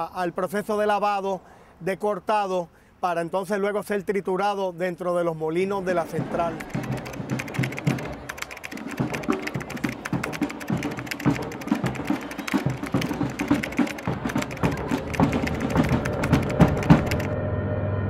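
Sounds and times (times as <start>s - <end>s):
typewriter keys clacking: 6.4s - 17.4s.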